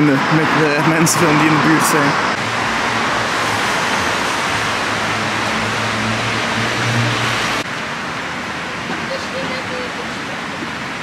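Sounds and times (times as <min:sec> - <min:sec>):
tyre and road noise: 0:00.0 - 0:11.0.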